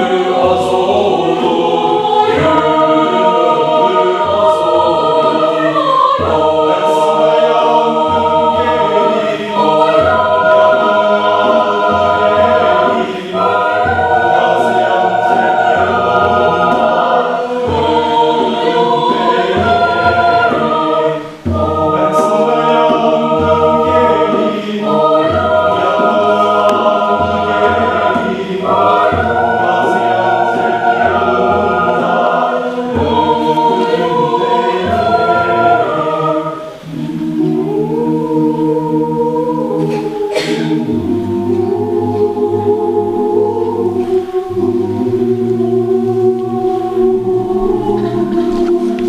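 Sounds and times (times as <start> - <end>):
mixed choir singing: 0.0 - 49.0.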